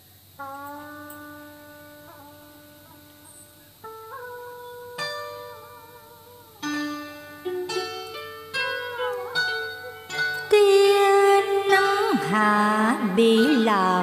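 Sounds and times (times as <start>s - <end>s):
plucked-string melody: 0.4s - 14.0s.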